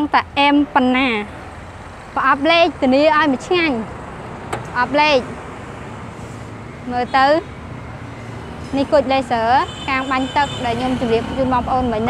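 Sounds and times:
woman speaking: 0.0 - 1.3, 2.2 - 3.9, 4.7 - 5.3, 6.9 - 7.5, 8.7 - 12.0
street traffic rumble: 0.0 - 12.0.

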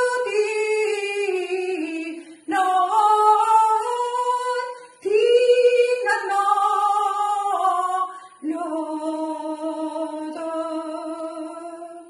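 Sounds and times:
singer breathing: 2.2 - 2.5, 8.0 - 8.4.

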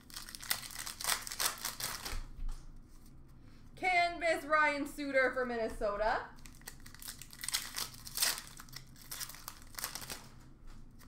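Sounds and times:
wrapper crinkling and tearing: 0.0 - 2.2, 6.4 - 10.4.

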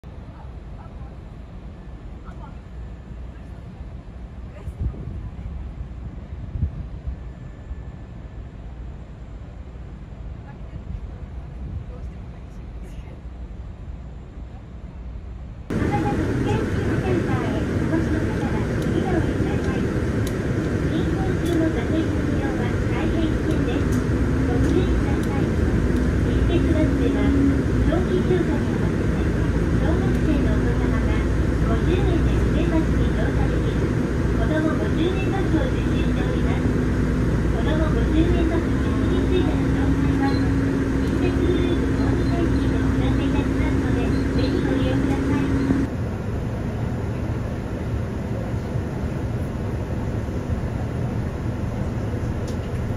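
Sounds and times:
indistinct passenger voices: 0.0 - 6.3, 10.3 - 13.4, 15.7 - 52.9
bus engine and road rumble: 0.0 - 52.9
low drone: 15.7 - 48.1.

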